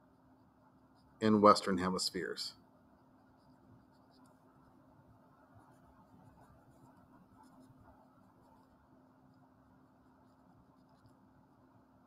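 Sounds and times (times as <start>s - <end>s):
felt-tip marker scratching on paper: 3.1s - 4.8s, 5.6s - 9.5s, 10.1s - 11.6s.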